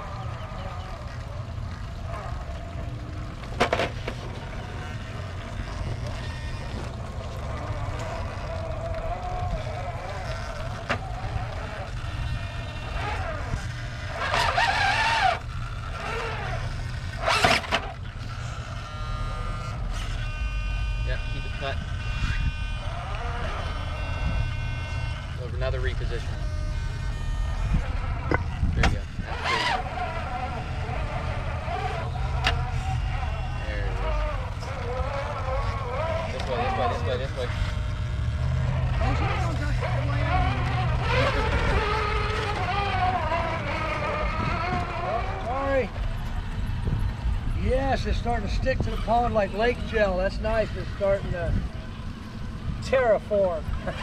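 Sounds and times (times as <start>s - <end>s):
wind rumbling on microphone: 0.0s - 25.4s, 26.2s - 54.0s
toy truck motor whining: 0.0s - 54.0s.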